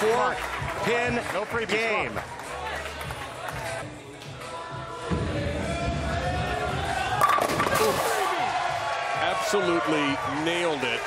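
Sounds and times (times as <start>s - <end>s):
bowling pins crashing: 7.2s - 8.3s.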